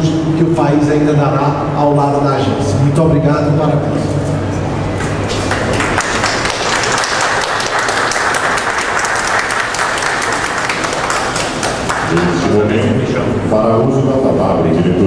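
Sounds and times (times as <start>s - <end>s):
audience applauding: 5.0s - 12.5s.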